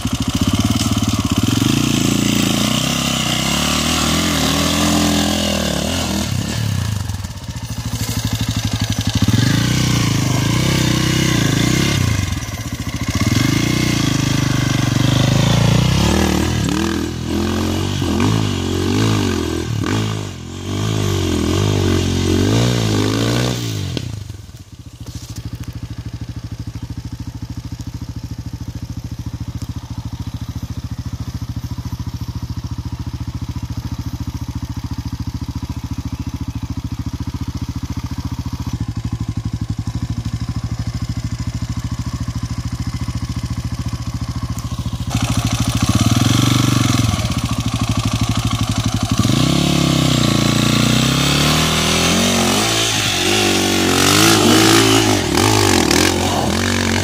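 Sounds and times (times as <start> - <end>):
dirt bike engine revving: 0.0 - 57.0.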